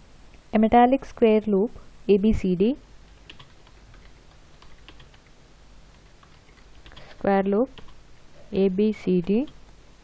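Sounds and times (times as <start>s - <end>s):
computer keyboard keystrokes: 3.3s - 5.3s, 7.8s - 8.0s.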